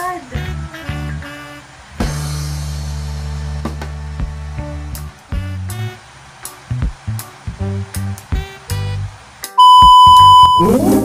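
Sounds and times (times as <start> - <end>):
electronic bleep tone: 9.6 - 10.8.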